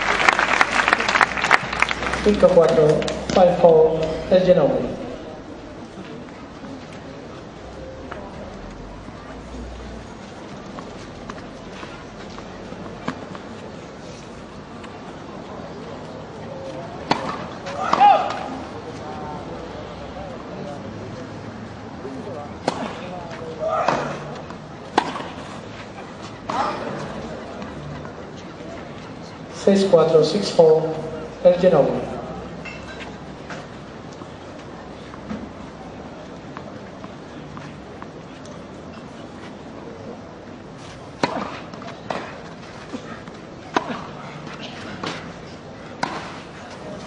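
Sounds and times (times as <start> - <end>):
rackets hitting tennis ball: 1.6 - 5.4, 17.0 - 18.7, 22.6 - 27.4, 40.9 - 47.0
person's voice: 2.2 - 5.4.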